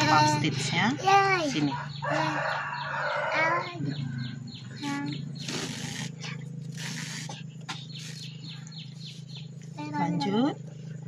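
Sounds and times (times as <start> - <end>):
steady low hum: 0.0 - 11.0
rooster crowing: 1.6 - 4.5.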